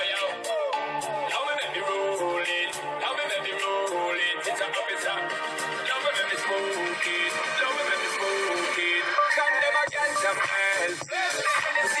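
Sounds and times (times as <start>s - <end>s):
song with melodic vocals: 0.0s - 12.0s.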